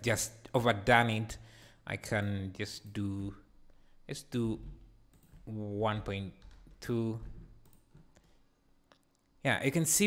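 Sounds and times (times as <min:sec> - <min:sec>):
person speaking: 0:00.0 - 0:08.0.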